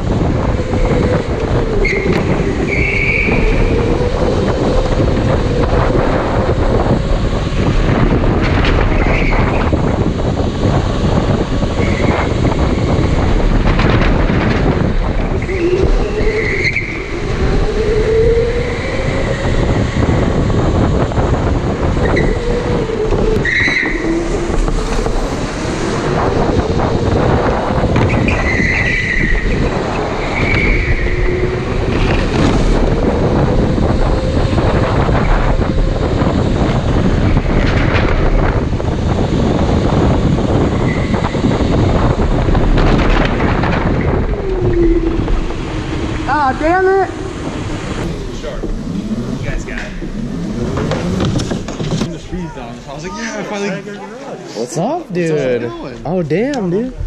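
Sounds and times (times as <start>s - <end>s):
wind rushing on microphone: 0.0s - 57.0s
tyre squeals: 1.6s - 4.2s, 8.9s - 9.7s, 15.2s - 19.9s, 21.9s - 25.4s, 27.9s - 33.0s.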